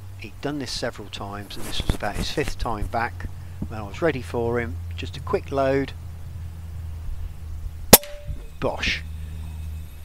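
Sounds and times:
low steady hum: 0.0s - 10.0s
air rifle shot: 7.9s - 8.4s.

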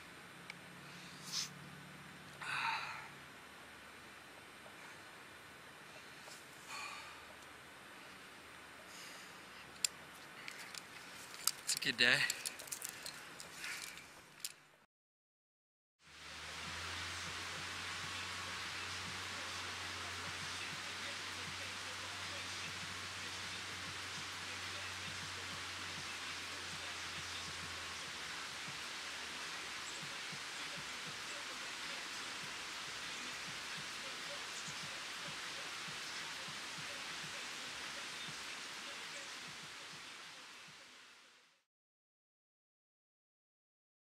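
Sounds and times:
low hum: 16.1s - 37.4s
steady rushing noise: 16.1s - 41.6s.

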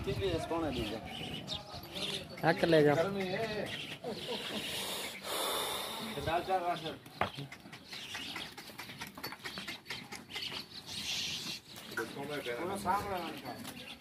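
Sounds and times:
people talking: 0.0s - 3.8s, 6.0s - 7.6s, 12.0s - 14.0s.

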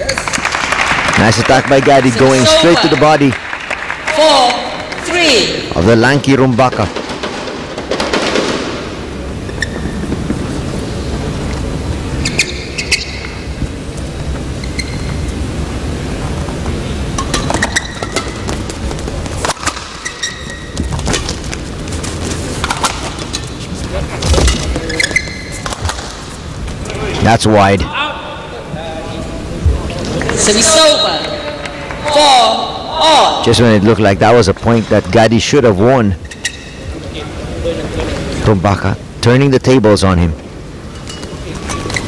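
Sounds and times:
shoes squeaking on court: 9.4s - 15.6s, 16.2s - 27.0s, 36.2s - 37.1s, 40.8s - 42.0s
racket striking shuttlecock: 17.2s - 18.8s.

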